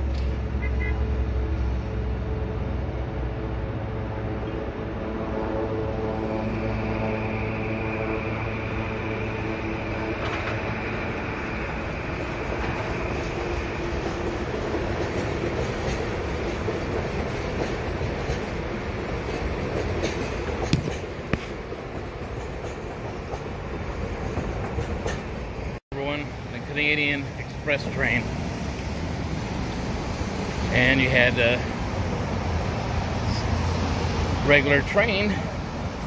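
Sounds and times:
high whine: 0.0s - 22.0s
diesel train drone: 0.0s - 36.0s
wheels clicking over rail joints: 12.1s - 29.0s.

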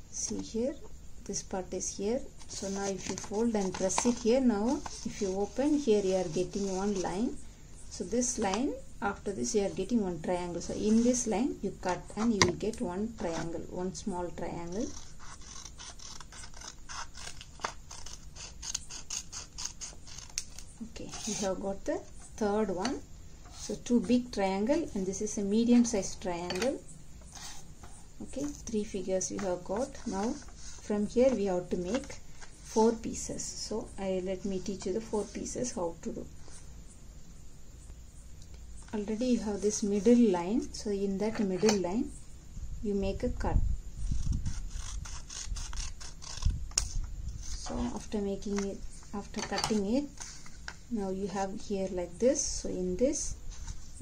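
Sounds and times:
scissors snipping paper: 14.6s - 21.4s, 44.5s - 46.9s.

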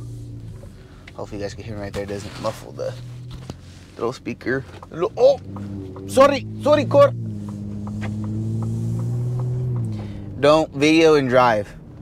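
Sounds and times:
truck engine drone from inside cab: 0.0s - 12.0s.

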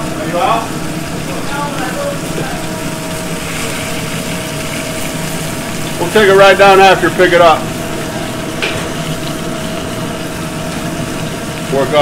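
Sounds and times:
liquid sizzling and bubbling in a pan: 0.0s - 12.0s
steady hum: 0.0s - 12.0s.

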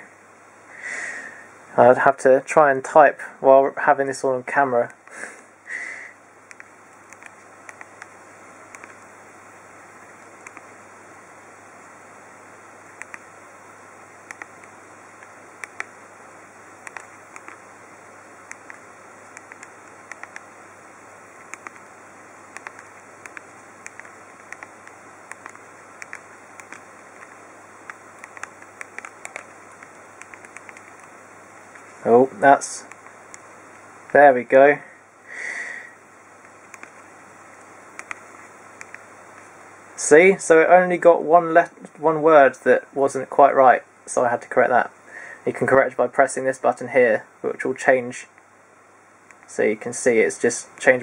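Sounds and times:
steady hiss: 0.0s - 51.0s
phone keypad clicks: 6.5s - 8.1s, 8.7s - 9.0s, 14.3s - 14.7s, 16.8s - 17.6s, 18.5s - 20.4s, 21.5s - 21.8s, 22.5s - 31.1s, 36.7s - 37.0s, 38.0s - 38.2s.

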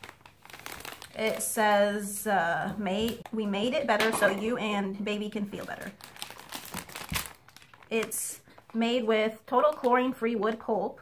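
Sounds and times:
plastic package crinkling: 0.0s - 2.0s, 5.2s - 10.6s.

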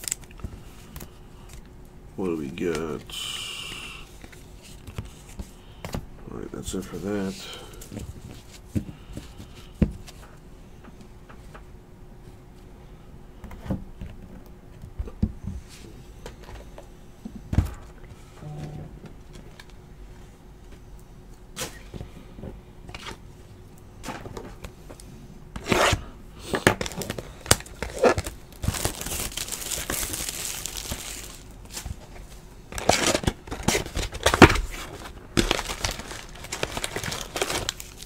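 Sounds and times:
plastic wrap tearing and crumpling: 0.0s - 0.3s, 26.6s - 31.9s, 32.8s - 38.0s.

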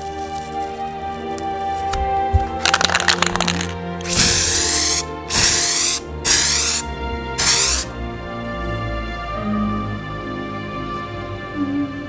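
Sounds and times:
crackling clicks: 0.0s - 4.7s
background music: 0.0s - 12.0s
loud hissing bursts: 4.0s - 7.9s.

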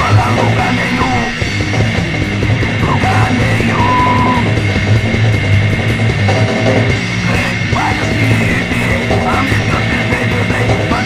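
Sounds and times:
yelled vocals: 0.0s - 5.2s, 7.0s - 11.0s
distorted guitar and bass: 0.0s - 11.0s
drums: 0.0s - 11.0s.

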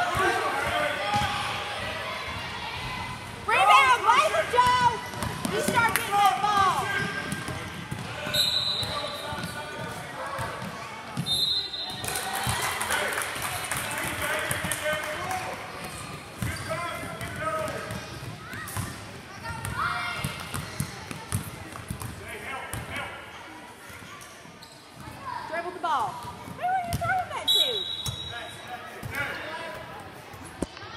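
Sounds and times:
voices echoing in gym: 0.0s - 30.9s
basketball bouncing: 4.6s - 8.1s
referee's whistle: 8.3s - 9.3s, 11.2s - 12.0s, 27.4s - 28.6s.

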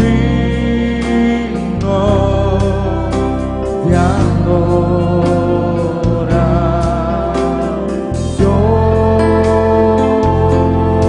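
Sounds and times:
keyboard chords: 0.0s - 11.0s
man singing: 0.0s - 11.0s.

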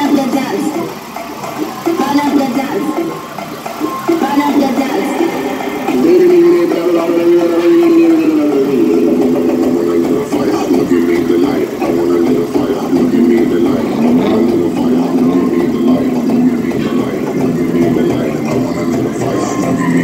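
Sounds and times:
loud dance music: 0.0s - 20.0s.

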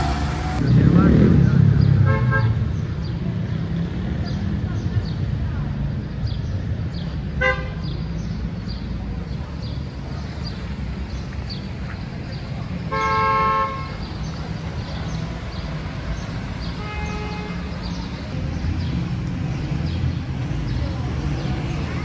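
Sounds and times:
street traffic: 0.0s - 22.0s
vehicle horn honking: 2.0s - 2.6s, 12.9s - 14.0s, 16.8s - 17.7s.

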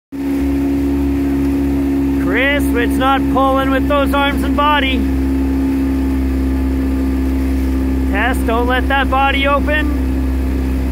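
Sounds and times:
outboard motor droning: 0.1s - 10.9s.

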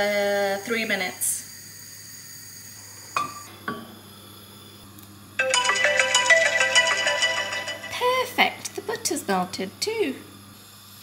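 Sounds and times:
phone timer alarm ringtone: 5.4s - 8.2s.

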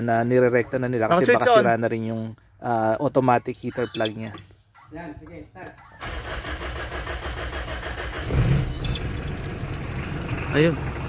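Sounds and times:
diesel engine cranking and running: 6.0s - 11.0s.

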